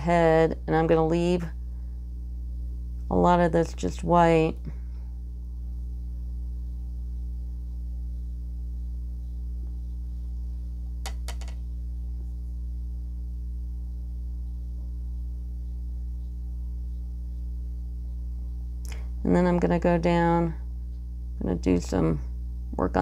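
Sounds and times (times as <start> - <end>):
low electrical hum: 0.0 - 23.0.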